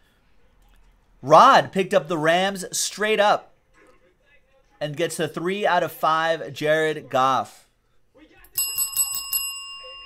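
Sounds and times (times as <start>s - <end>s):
bell ringing: 8.5s - 10.0s.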